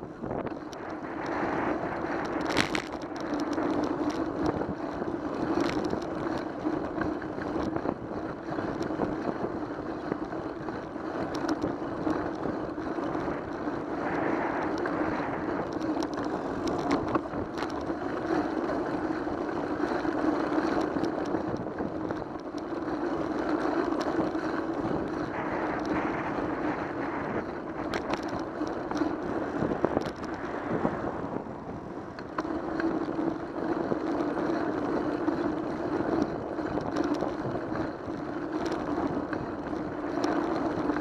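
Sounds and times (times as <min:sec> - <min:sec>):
bicycle rolling on asphalt: 0:00.0 - 0:41.0
small clicks and rattles: 0:00.0 - 0:41.0
wind on microphone: 0:00.0 - 0:41.0.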